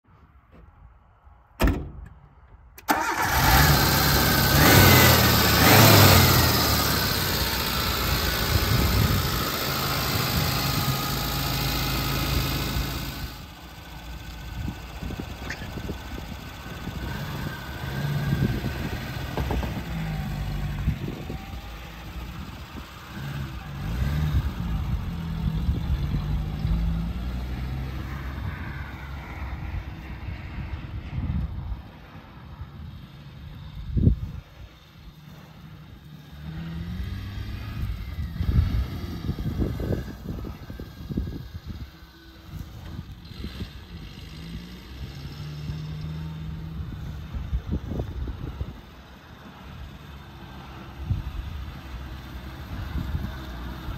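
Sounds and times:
off-road vehicle engine driving: 2.4s - 53.9s.

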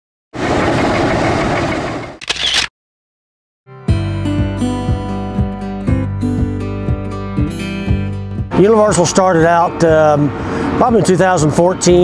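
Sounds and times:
machine engine running: 0.4s - 2.7s
acoustic guitar music: 3.7s - 11.9s.

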